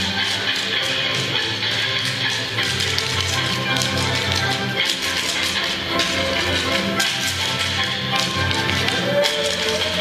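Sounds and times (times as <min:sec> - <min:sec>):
music: 0:00.0 - 0:10.0
wooden sticks clacking: 0:00.0 - 0:10.0.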